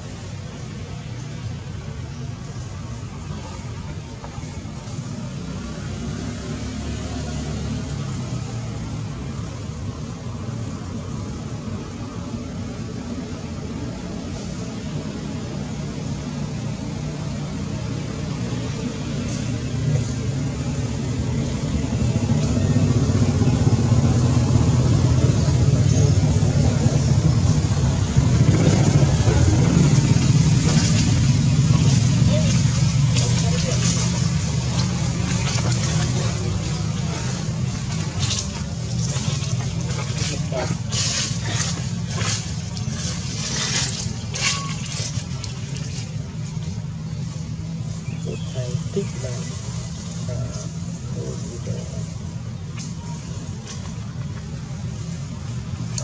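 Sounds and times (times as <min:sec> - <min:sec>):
low motor rumble: 0:00.0 - 0:56.0.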